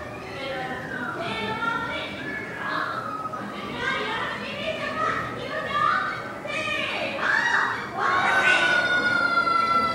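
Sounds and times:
children shouting: 7.1 - 9.9
long steady high tone: 7.9 - 9.9.

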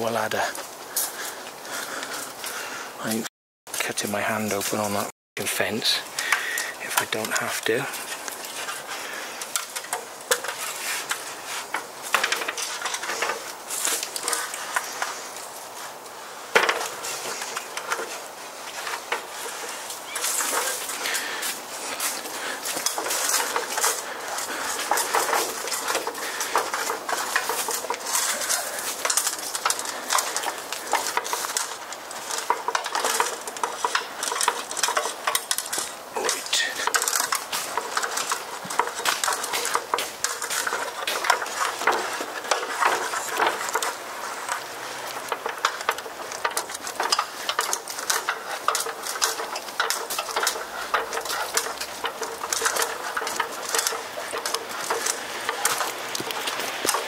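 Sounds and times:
footsteps on leaves and gravel: 0.0 - 57.0
ladder rattling and clanking: 0.0 - 57.0.

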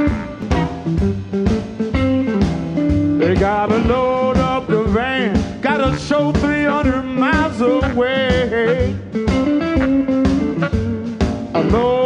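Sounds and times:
bass: 0.0 - 12.0
drum kit beat: 0.0 - 12.0
electric guitar: 0.0 - 12.0.

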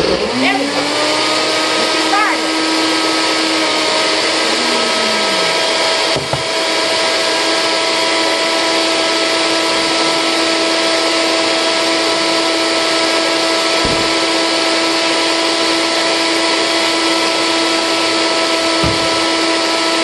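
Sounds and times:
blender running: 0.0 - 20.0.

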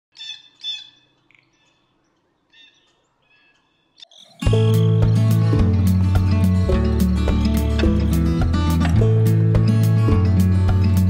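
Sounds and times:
bird calls: 0.1 - 5.2.

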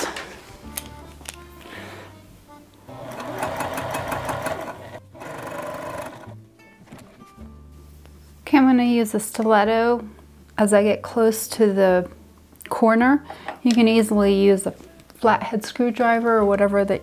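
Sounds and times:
background music: 0.0 - 17.0
sewing machine stitching: 2.9 - 6.3.

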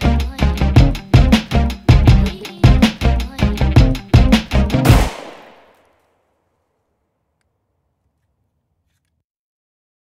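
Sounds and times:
loud ringing beat hit: 4.8 - 5.7.

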